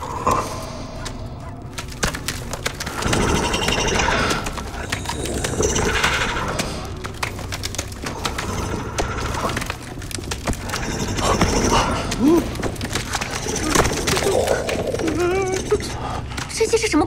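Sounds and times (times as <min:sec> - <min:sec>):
wood crackling and splintering: 0:00.0 - 0:17.0.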